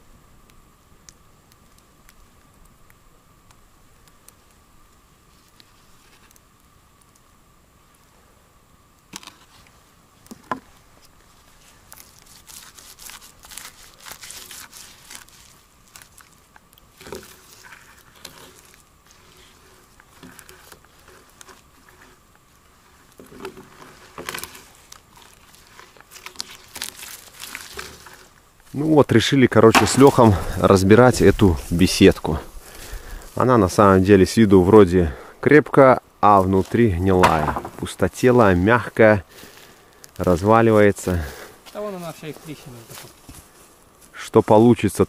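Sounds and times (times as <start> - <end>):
paint roller rolling on wood: 16.9 - 28.4
sharp knocks: 37.2 - 37.8.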